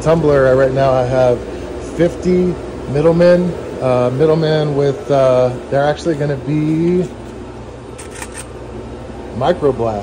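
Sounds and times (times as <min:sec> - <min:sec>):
machine shop hum: 0:00.0 - 0:10.0.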